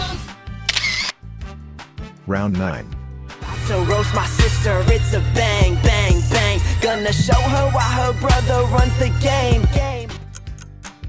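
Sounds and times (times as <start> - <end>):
camera shutter transition effect: 0.7 - 1.2
background music with bass beat: 3.0 - 11.0.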